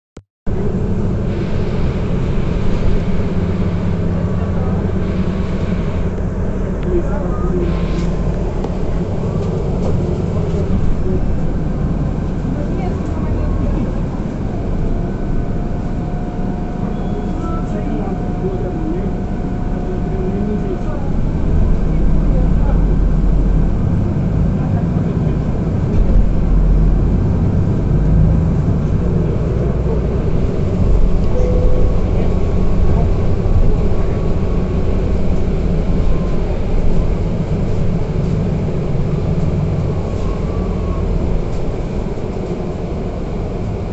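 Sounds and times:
bus engine and road rumble: 0.4s - 43.9s.

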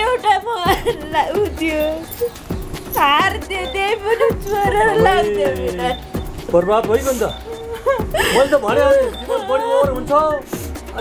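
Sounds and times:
woman singing wavering notes: 7.3s - 8.2s.

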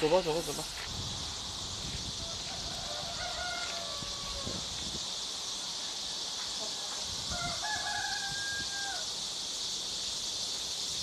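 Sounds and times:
high hiss of rural background: 0.0s - 11.0s
rooster crowing: 2.2s - 4.7s, 7.3s - 9.1s.

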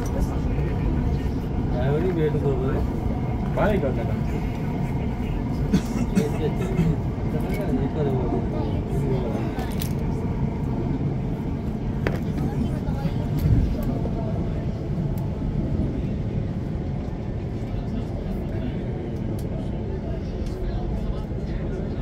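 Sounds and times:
train wheels rumbling on rail: 0.0s - 22.0s.

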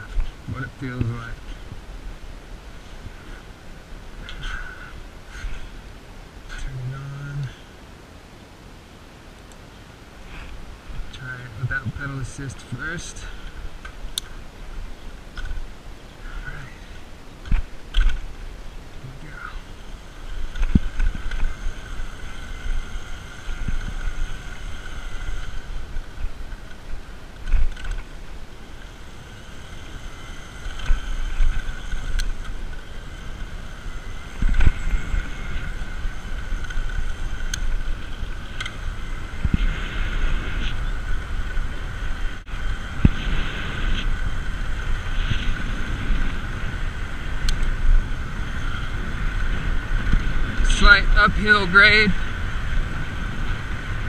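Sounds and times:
wind buffeting microphone: 9.7s - 54.0s
electric motor whine: 11.9s - 54.0s.

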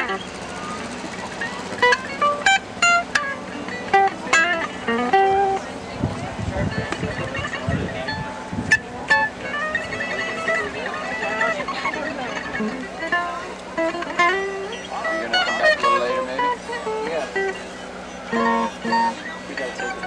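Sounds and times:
guitar chord strokes: 0.0s - 20.0s
guitar picking single notes: 0.0s - 20.0s.

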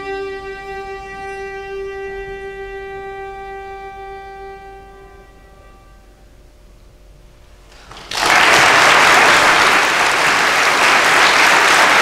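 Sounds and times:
cello long bowed note: 0.0s - 7.5s.

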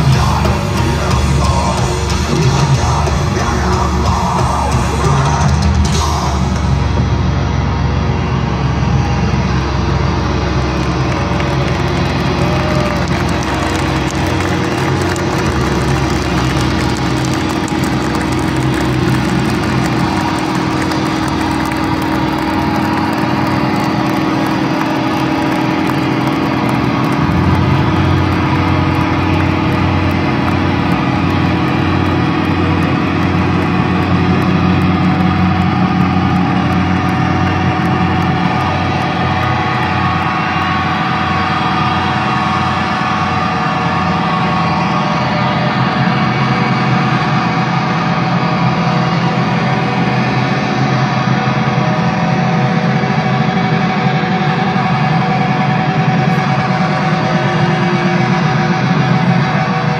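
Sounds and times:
amplified metal band drone: 0.0s - 59.9s.

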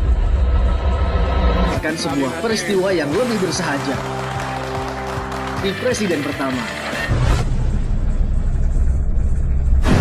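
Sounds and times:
deep cinematic rumble: 0.0s - 1.8s
burst-like hit: 9.8s - 10.0s.

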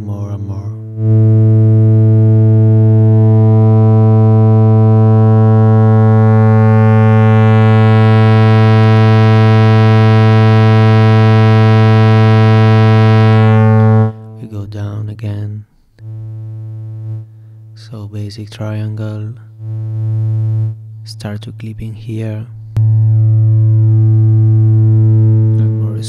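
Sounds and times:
distorted synthesizer tone: 0.0s - 14.9s, 16.0s - 17.4s, 19.5s - 21.2s, 22.8s - 26.0s.

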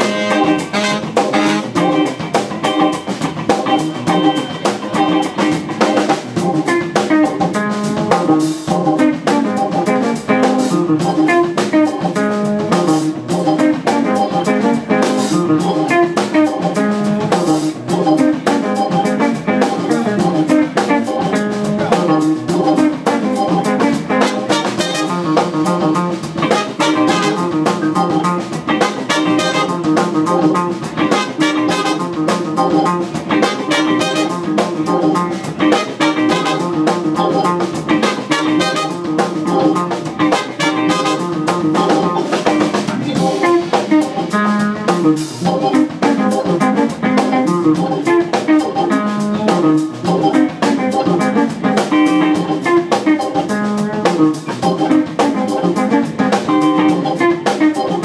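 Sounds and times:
tenor saxophone: 0.0s - 2.1s, 24.1s - 25.4s, 26.5s - 27.6s, 28.8s - 30.0s, 31.0s - 32.2s, 33.4s - 34.5s, 35.7s - 36.9s, 38.0s - 39.2s, 40.3s - 41.4s
trumpet: 0.0s - 2.2s, 24.1s - 25.4s, 26.4s - 27.7s, 28.8s - 30.0s, 31.0s - 32.3s, 33.3s - 34.6s, 35.7s - 36.9s, 38.0s - 39.2s, 40.2s - 41.5s
bass: 0.0s - 58.0s
drums keeping a steady beat: 0.0s - 58.0s
electric guitar: 0.0s - 58.0s
organ: 0.0s - 58.0s.

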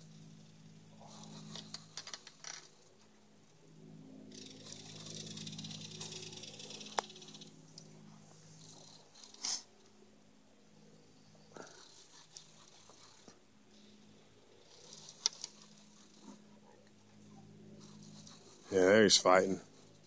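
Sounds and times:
faint low hum: 0.0s - 20.0s.

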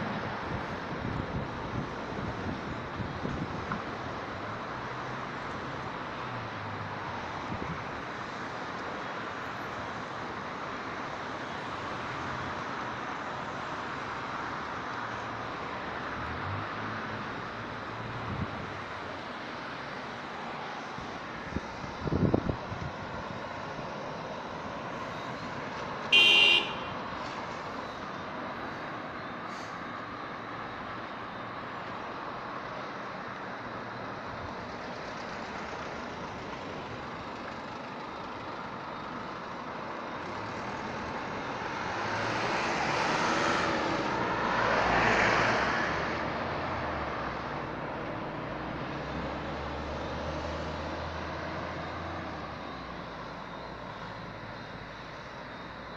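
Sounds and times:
road traffic: 0.0s - 55.9s
car horn toot: 26.1s - 27.0s.

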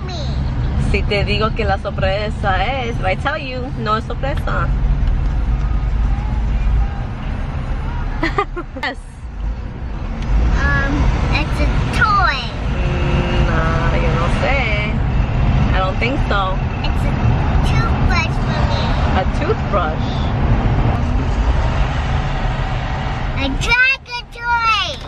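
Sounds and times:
girl talking or singing: 0.0s - 0.4s, 10.6s - 12.6s, 16.8s - 19.1s, 23.4s - 25.0s
car road and engine rumble: 0.0s - 25.0s.

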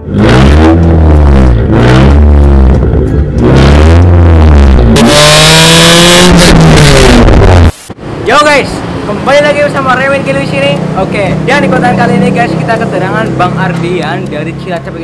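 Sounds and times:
car engine revving: 0.0s - 15.0s.

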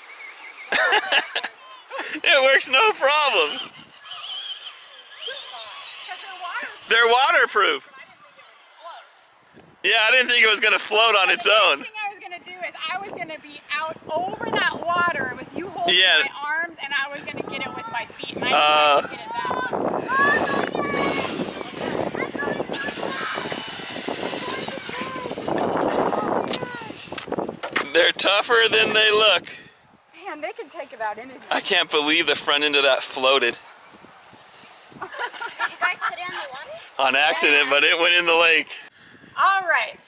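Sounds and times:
rc truck electric motor whining: 0.0s - 1.9s, 2.6s - 9.4s, 20.0s - 27.2s
people talking: 5.3s - 9.0s, 9.9s - 23.6s, 24.4s - 25.4s, 30.2s - 33.5s, 35.6s - 38.8s
man's voice: 9.9s - 11.8s, 31.5s - 33.5s, 37.0s - 38.8s.

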